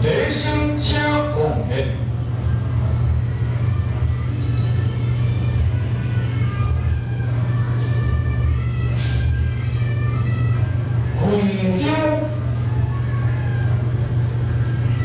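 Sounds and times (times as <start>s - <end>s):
faint music: 0.0s - 15.0s.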